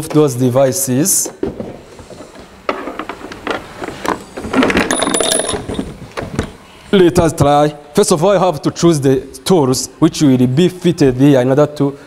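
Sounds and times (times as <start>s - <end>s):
loose metal tools rattling: 4.4s - 6.0s
tool case knocks and clinks: 4.4s - 6.4s.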